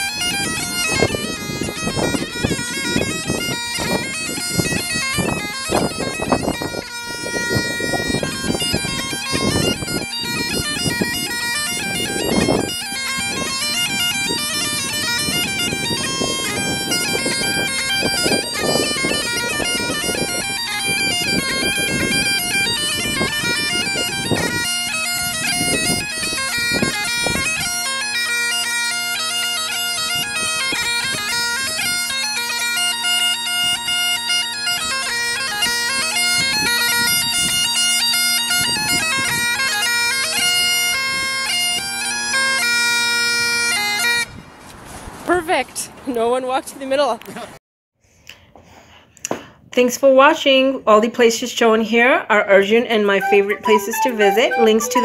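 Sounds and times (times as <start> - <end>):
bagpipes playing a tune: 0.0 - 44.3, 53.0 - 55.0.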